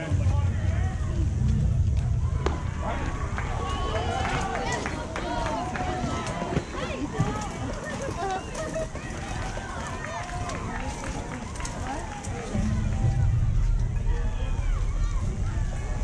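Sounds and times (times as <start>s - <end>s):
low rumble: 0.0s - 5.9s, 10.8s - 16.0s
people calling out and chattering: 0.0s - 16.0s.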